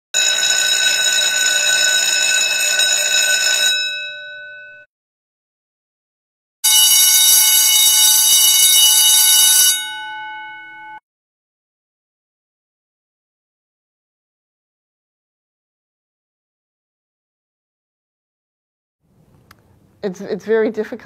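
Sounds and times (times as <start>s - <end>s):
bell ringing: 0.2s - 4.9s, 6.6s - 11.0s.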